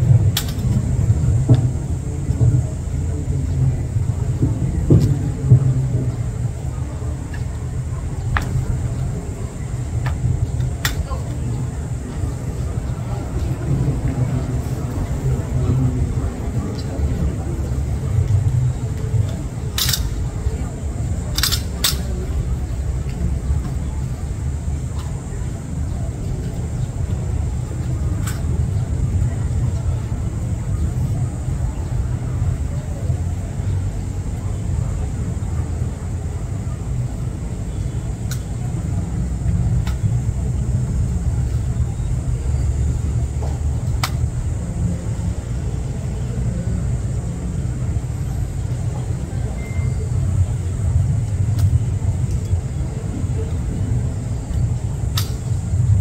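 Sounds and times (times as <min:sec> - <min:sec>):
wind buffeting microphone: 0:00.0 - 0:56.0
sharp clicks: 0:21.3 - 0:22.1.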